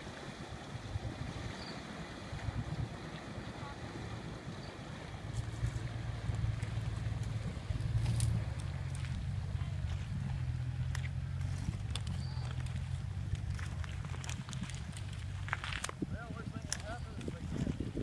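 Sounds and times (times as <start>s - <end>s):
wind buffeting microphone: 0.0s - 18.0s
vehicle engine running: 2.3s - 16.6s.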